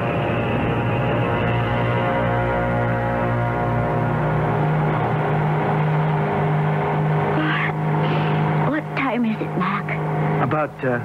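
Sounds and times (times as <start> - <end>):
propeller plane engines droning: 0.0 - 11.0
voices: 7.3 - 11.0.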